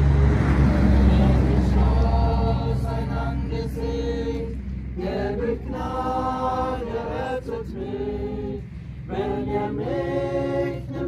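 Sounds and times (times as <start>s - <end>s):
rushing noise: 0.0s - 9.5s
steady low rumble: 0.0s - 11.0s
congregation singing a hymn: 0.6s - 11.0s.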